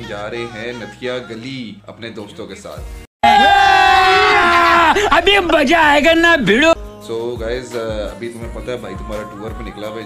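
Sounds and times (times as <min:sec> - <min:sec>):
person yelling: 0:03.2 - 0:06.8.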